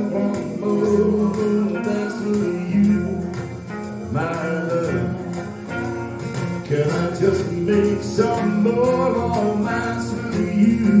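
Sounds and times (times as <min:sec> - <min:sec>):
person singing melody: 0:00.0 - 0:05.8, 0:06.6 - 0:11.0
band playing swing music: 0:00.0 - 0:11.0.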